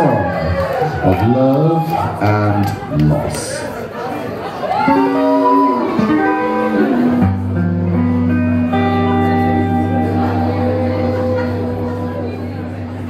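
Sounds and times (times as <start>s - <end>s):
electric guitar playing: 4.7s - 13.0s.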